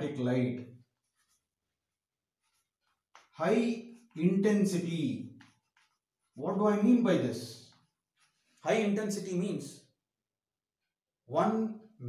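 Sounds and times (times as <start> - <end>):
chalk scratching on blackboard: 0.8 - 6.4, 7.6 - 8.6.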